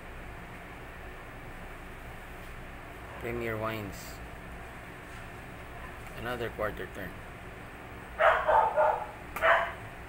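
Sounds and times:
dog barking: 8.2s - 9.8s.

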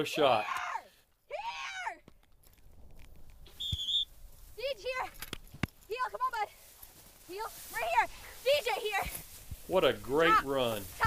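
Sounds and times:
high dog whistle blast: 3.5s - 4.1s.

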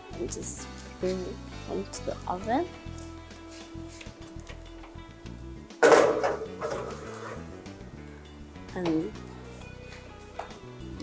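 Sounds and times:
background music: 0.0s - 11.0s
metal tray clattering: 5.8s - 7.5s.

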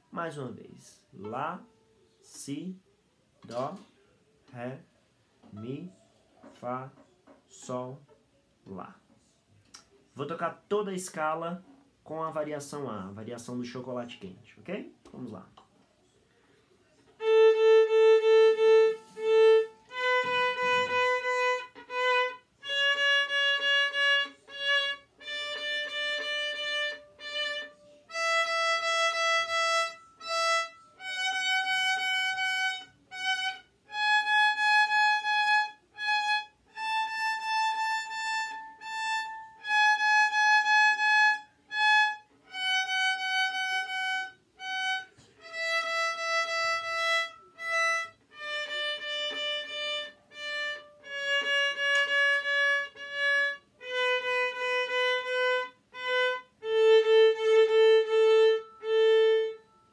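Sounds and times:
solo violin playing a scale: 17.2s - 59.9s.

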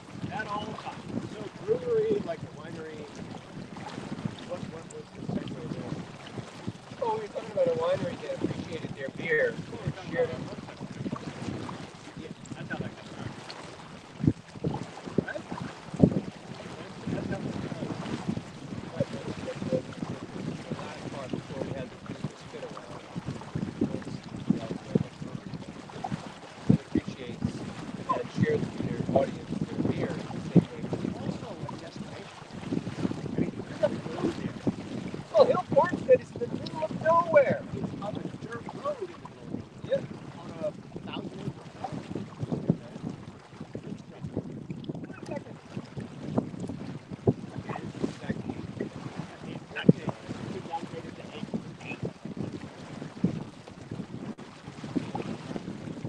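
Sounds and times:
water washing past hull: 0.0s - 56.0s
wind buffeting microphone: 0.0s - 56.0s.

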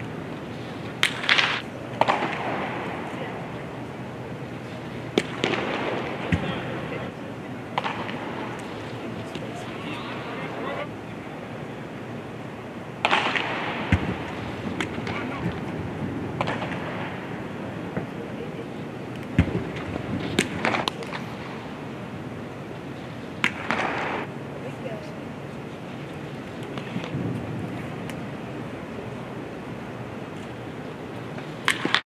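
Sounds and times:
burst of crowd noise: 0.0s - 22.2s
crowd chatter: 0.0s - 32.0s
baseballs popping into mitt: 31.4s - 32.0s.

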